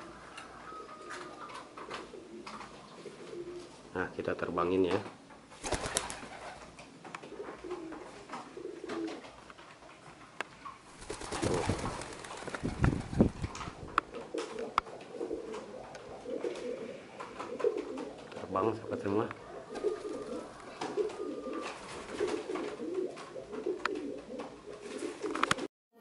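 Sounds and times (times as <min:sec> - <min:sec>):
pigeons cooing: 0:00.0 - 0:03.8, 0:05.6 - 0:09.4, 0:14.0 - 0:25.7
wings flapping: 0:05.5 - 0:06.8, 0:10.9 - 0:18.3, 0:19.7 - 0:25.7.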